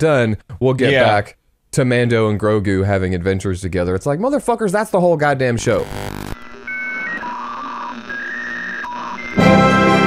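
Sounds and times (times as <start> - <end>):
electronic bleeps: 5.8 - 9.4.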